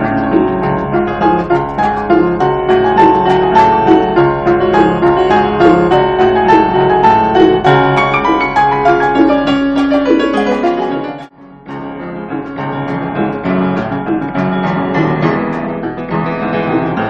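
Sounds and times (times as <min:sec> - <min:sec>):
grand piano playing: 0:00.0 - 0:17.0.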